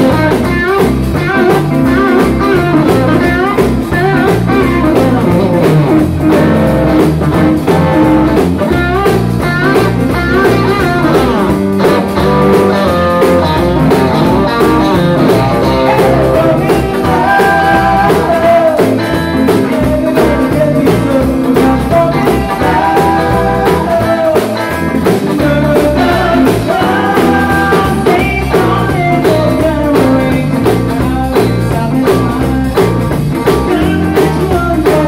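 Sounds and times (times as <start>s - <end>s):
lead guitar bending notes: 0.0s - 34.7s
rock band playing: 0.0s - 35.0s.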